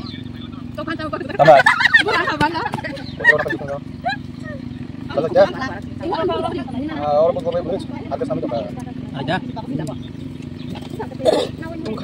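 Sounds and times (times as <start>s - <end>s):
women laughing loudly: 1.2s - 4.6s.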